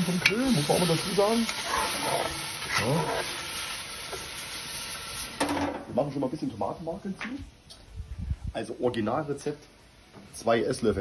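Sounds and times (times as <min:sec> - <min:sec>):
onions sizzling in hot oil: 0:00.0 - 0:07.0
spatula scraping pot bottom: 0:01.4 - 0:03.5.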